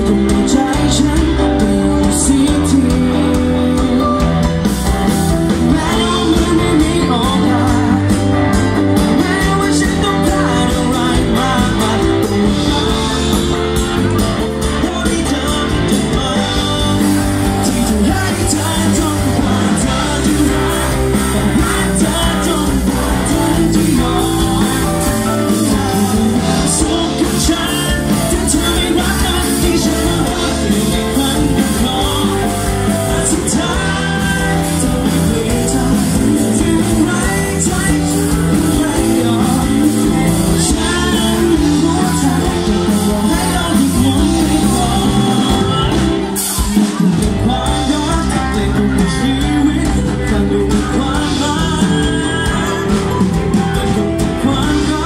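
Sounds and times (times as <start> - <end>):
man singing into a microphone: 0.0 - 55.0
pop-rock band playing: 0.0 - 55.0.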